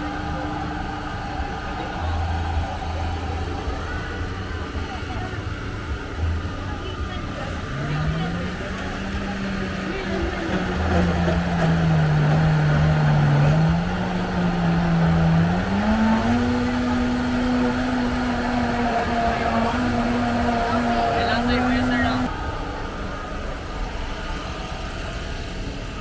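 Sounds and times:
crowd noise: 0.0s - 26.0s.

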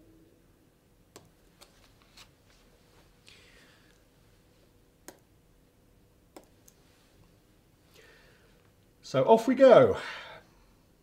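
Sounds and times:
soft rustle: 1.5s - 4.8s, 6.7s - 8.0s.

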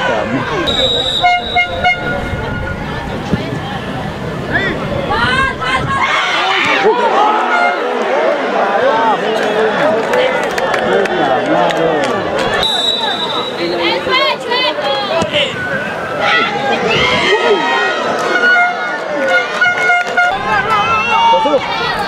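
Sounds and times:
crowd shouting and calling: 0.0s - 22.0s.

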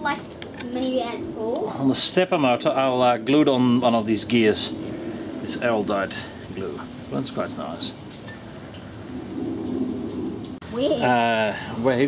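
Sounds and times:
man speaking: 1.8s - 4.8s, 5.4s - 8.0s, 11.0s - 12.0s
low rough rumbling: 2.9s - 10.8s.

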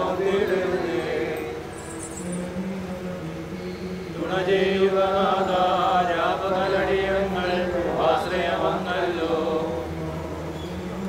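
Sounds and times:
person chanting in long notes: 0.0s - 11.0s
steady low hum: 0.0s - 11.0s.

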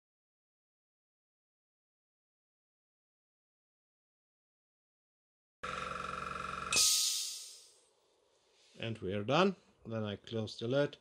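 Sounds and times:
airbrush compressor pulsing: 5.6s - 6.8s.

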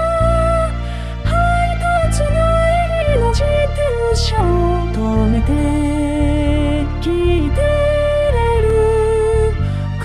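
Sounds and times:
electric bass: 0.0s - 10.0s
synthesized female singing voice: 0.0s - 10.0s
synthesized strings: 0.0s - 10.0s.

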